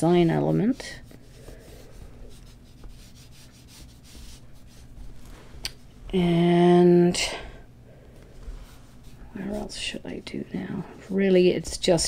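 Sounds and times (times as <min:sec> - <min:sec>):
paintbrush scratching on paper: 0:00.0 - 0:05.2, 0:08.4 - 0:10.4.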